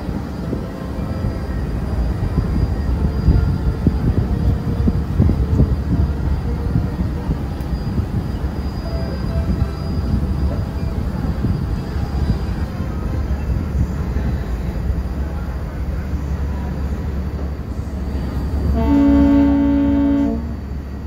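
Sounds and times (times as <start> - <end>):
ferry engine rumble: 0.0 - 21.0
wind: 0.0 - 21.0
ferry horn blowing: 18.7 - 20.7.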